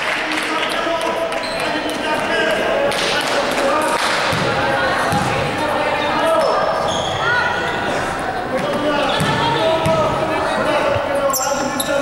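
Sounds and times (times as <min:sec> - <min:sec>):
voices of players and spectators: 0:00.0 - 0:12.0
basketball bouncing on floor: 0:04.3 - 0:05.4, 0:09.2 - 0:10.0.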